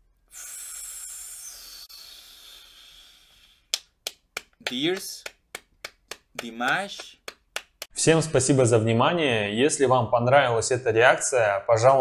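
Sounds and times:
long breathy exhale: 0.3s - 3.7s
sharp clap: 3.6s - 7.9s.

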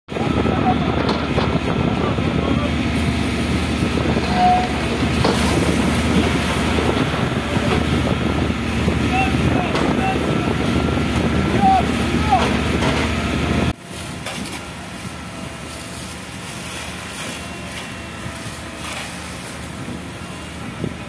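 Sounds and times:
people's voices: 0.1s - 13.0s
diesel engine running: 0.1s - 21.0s
fire hose spraying water: 0.1s - 21.0s.

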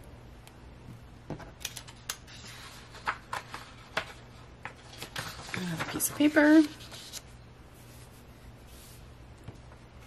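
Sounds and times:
paper and book pages rustling: 1.6s - 9.1s.

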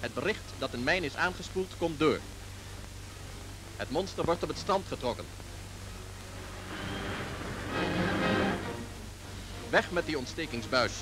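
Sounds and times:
background music sustained tones: 0.0s - 11.0s
low steady hum: 0.0s - 11.0s.

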